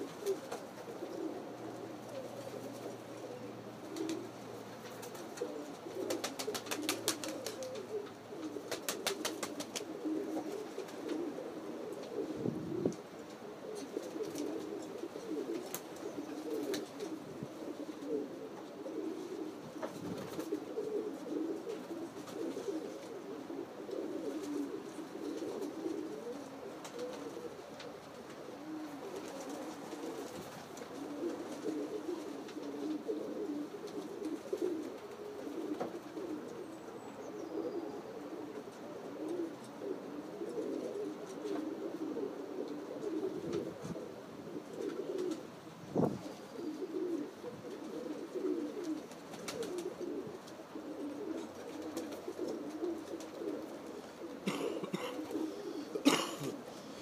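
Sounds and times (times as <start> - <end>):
pigeons cooing: 0.0 - 57.0.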